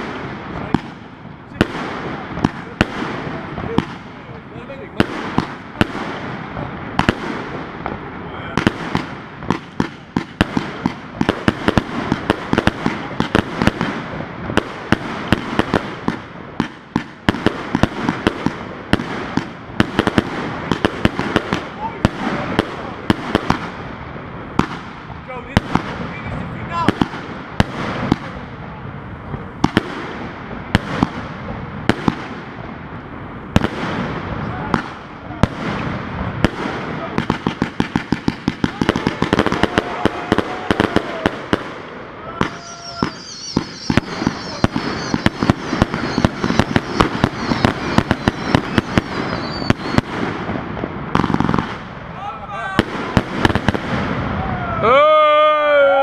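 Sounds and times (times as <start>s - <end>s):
continuous hiss: 0.0s - 56.0s
fireworks launching and bursting: 0.0s - 56.0s.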